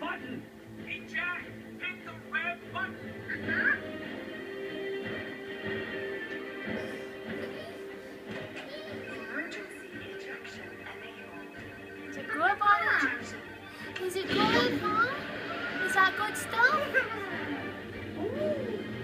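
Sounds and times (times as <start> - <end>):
cartoon background music: 0.0 - 19.0.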